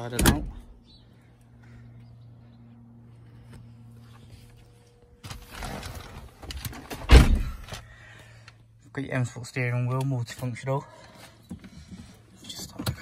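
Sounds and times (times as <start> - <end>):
car door shutting: 6.8 - 7.7.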